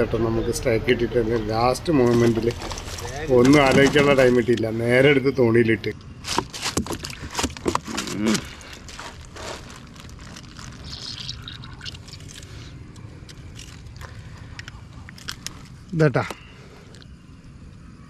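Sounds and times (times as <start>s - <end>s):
water sloshing: 2.0s - 4.6s.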